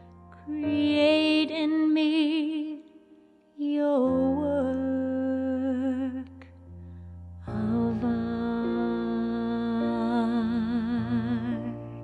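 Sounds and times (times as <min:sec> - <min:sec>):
woman singing with vibrato: 0:07.5 - 0:12.0.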